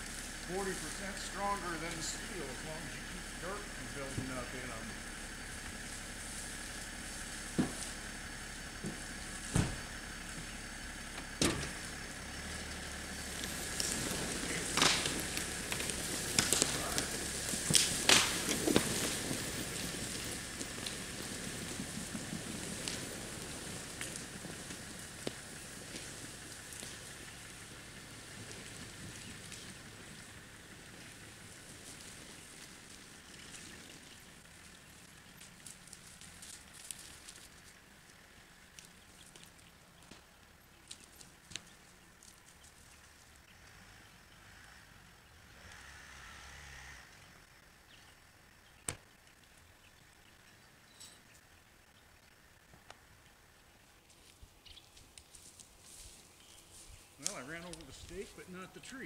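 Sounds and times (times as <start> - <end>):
branches cracking and snapping: 0.0 - 43.4, 54.0 - 59.0
log dragged through brush: 0.0 - 44.9, 45.5 - 47.4, 53.8 - 59.0.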